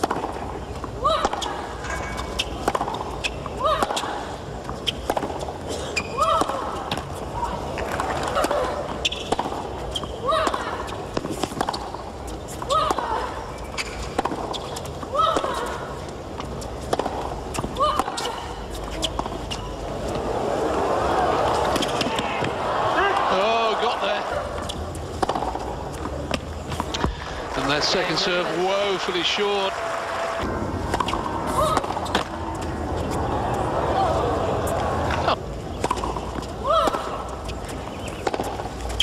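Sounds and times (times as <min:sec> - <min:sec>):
racket hitting tennis ball: 0:01.1 - 0:04.2, 0:07.8 - 0:12.0, 0:16.4 - 0:20.2, 0:21.4 - 0:27.3, 0:30.4 - 0:33.6, 0:34.6 - 0:39.0
crowd cheering and applauding: 0:27.0 - 0:30.8.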